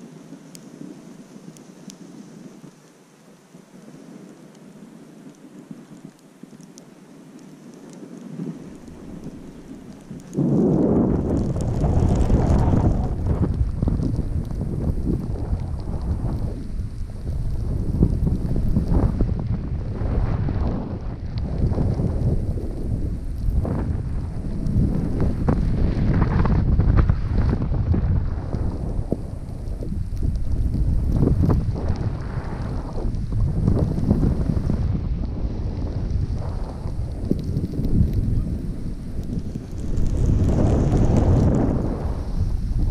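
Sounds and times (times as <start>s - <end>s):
wind buffeting microphone: 7.7s - 42.9s
snowboard edges scraping snow: 10.3s - 13.5s, 35.6s - 42.9s.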